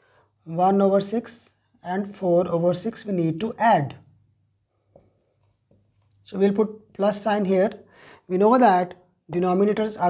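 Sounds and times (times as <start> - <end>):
marker writing on whiteboard: 4.6 - 6.2.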